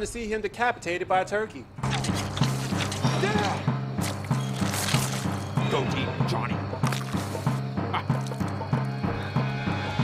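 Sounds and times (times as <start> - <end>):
film music with pulsing bass: 1.8 - 10.0.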